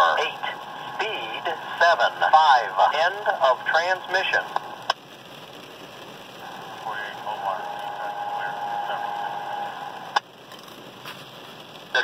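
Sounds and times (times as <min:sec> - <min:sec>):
radio scanner static hissing: 0:00.0 - 0:12.0.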